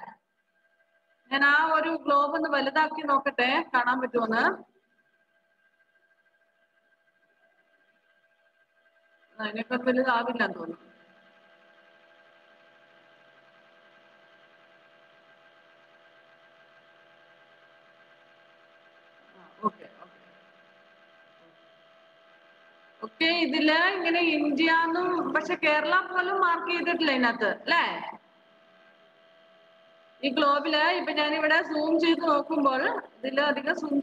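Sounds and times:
faint steady hum: 0.0 - 34.0
woman's voice: 1.3 - 4.6, 9.4 - 10.8, 23.0 - 28.2, 30.2 - 34.0.

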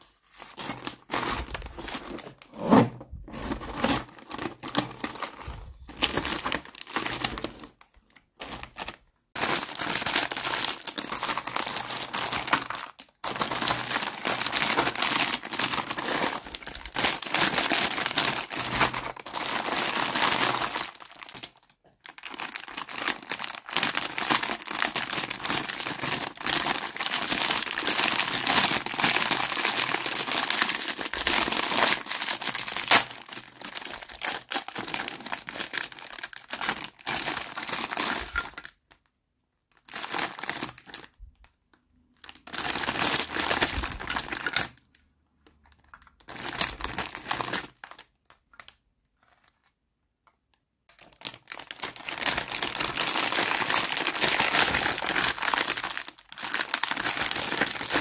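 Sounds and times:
plastic bags crinkling: 0.0 - 39.0, 39.7 - 41.2, 42.2 - 44.8, 45.8 - 49.6, 50.9 - 58.0.

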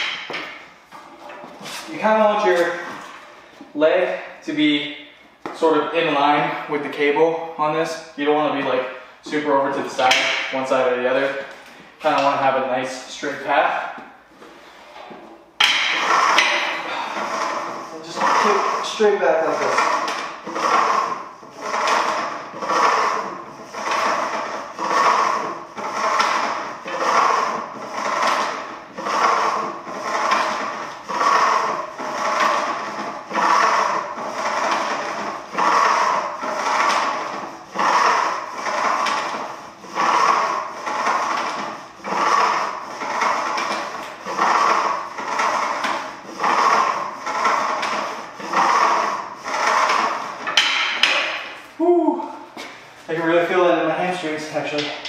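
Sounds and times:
cable machine pulley sliding: 0.0 - 7.1, 7.9 - 52.0, 52.6 - 55.0.

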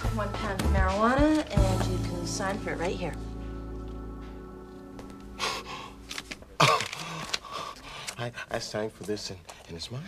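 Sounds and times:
held music chord: 1.6 - 6.2
man gasping: 6.6 - 8.2.

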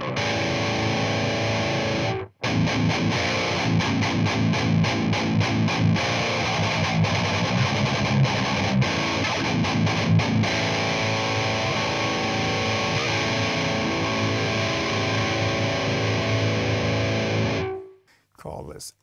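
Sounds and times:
distorted electric guitar riffing: 0.0 - 18.0.

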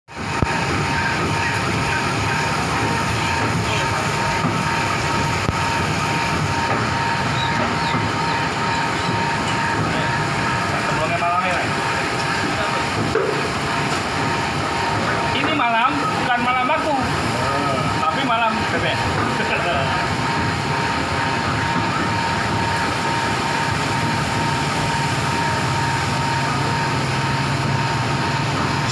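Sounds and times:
loud machine noise: 0.1 - 28.9
voices talking: 0.8 - 27.6.

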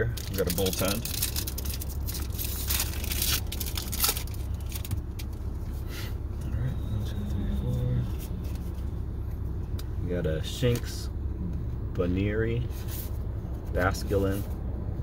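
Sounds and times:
low car rumble: 0.0 - 15.0
foil wrapper crinkling and tearing: 0.1 - 5.4
handling of trading cards: 0.1 - 5.9, 8.0 - 9.9.

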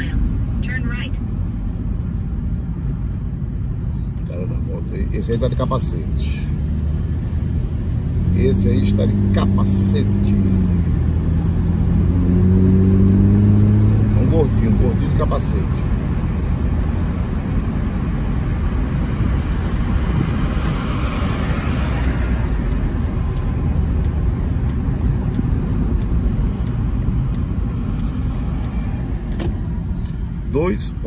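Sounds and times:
road and engine rumble in car: 0.0 - 31.0.

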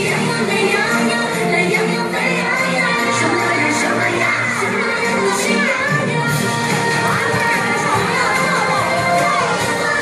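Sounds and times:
music: 0.0 - 10.0
children shouting and cheering: 2.0 - 10.0.

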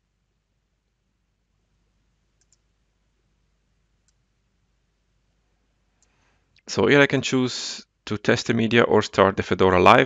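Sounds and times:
computer mouse clicks: 2.4 - 2.7.

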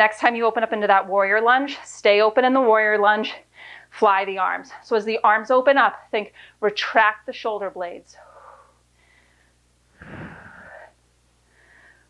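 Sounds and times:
breath buffeting microphone: 9.9 - 10.9
woman exhaling hard: 10.0 - 10.9.

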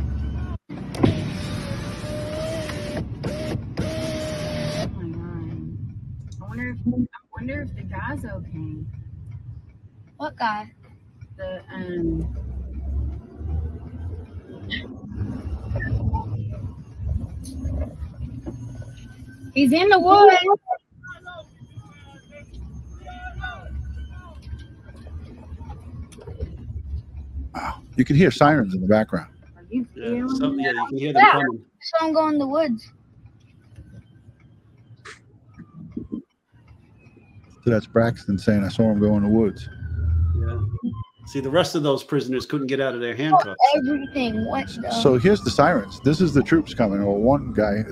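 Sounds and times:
car interior rumble: 0.0 - 47.9
car electric window motor whining: 0.9 - 4.9
faint voices: 19.6 - 24.5, 27.6 - 31.6, 37.6 - 39.7, 40.3 - 47.9.

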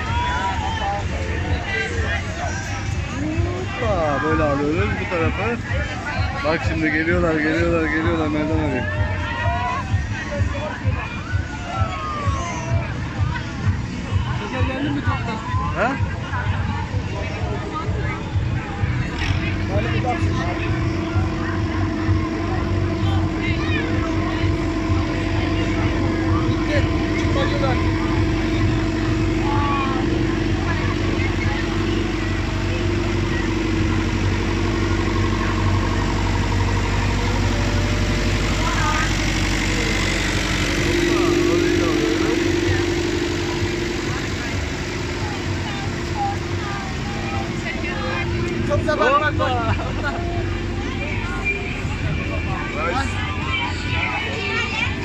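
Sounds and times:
crowd chattering: 0.0 - 55.0
tractor engine running: 0.0 - 55.0.

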